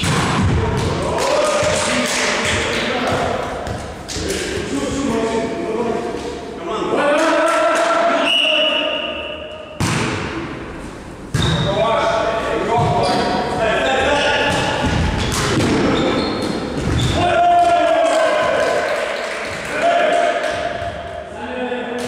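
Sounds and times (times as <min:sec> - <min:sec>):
players shouting: 0:17.0 - 0:18.9.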